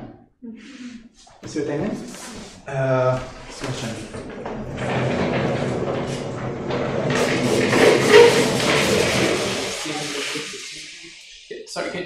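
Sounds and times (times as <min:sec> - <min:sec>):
chalkboard panels rolling rumble: 0:03.0 - 0:11.0.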